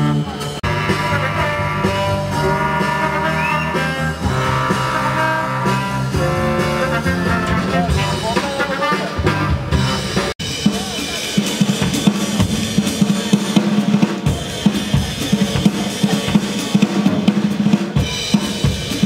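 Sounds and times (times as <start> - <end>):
trombone quartet playing chords: 0.0 - 10.3
drum kit: 0.0 - 19.0.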